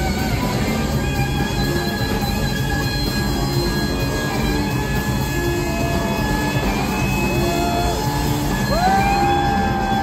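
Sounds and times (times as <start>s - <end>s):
bass guitar: 0.0s - 10.0s
distorted electric guitar: 0.0s - 10.0s
drums: 0.0s - 10.0s.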